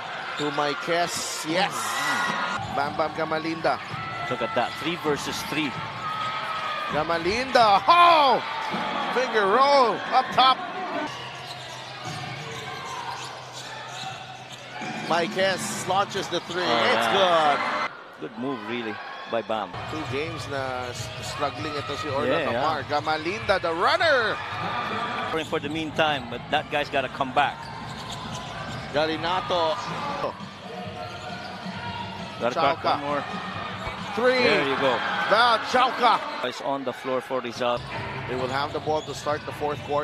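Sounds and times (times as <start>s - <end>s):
arena crowd noise: 0.0s - 40.0s.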